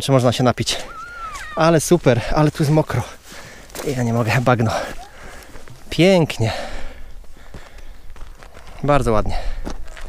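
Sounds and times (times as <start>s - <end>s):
footsteps on dirt path: 0.8s - 10.0s.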